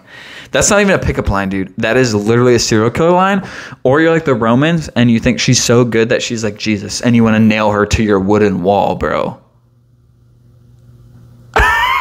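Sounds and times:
man laughing loudly: 0:11.5 - 0:12.0.

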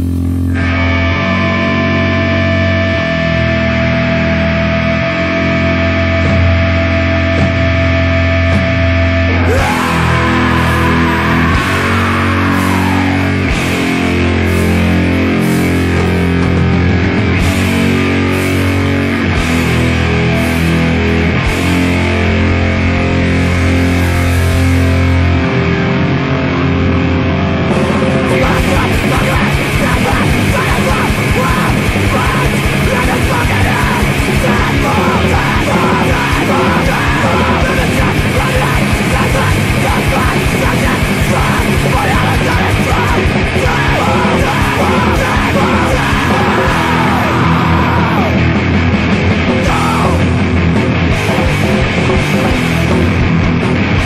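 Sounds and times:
bass guitar: 0:00.0 - 0:54.0
distorted electric guitar: 0:00.0 - 0:54.0
drums: 0:00.0 - 0:54.0
hardcore punk band playing: 0:00.0 - 0:54.0
person yelling vocals: 0:09.4 - 0:13.5, 0:28.2 - 0:48.5, 0:49.6 - 0:50.4.

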